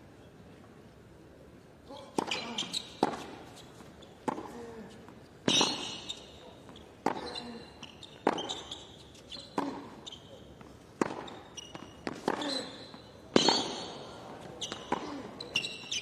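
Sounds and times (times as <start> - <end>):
tennis ball hits and bounces: 4.2 - 4.6, 8.2 - 8.7, 9.5 - 10.0, 11.0 - 15.6.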